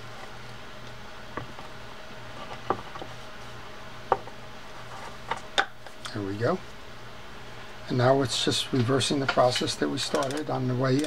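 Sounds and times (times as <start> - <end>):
fishing reel clicks and taps: 10.2 - 10.4.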